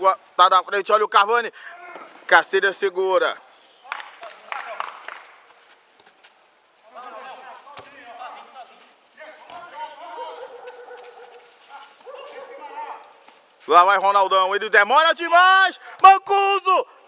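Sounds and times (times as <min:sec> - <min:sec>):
voices calling out: 0:06.8 - 0:14.3.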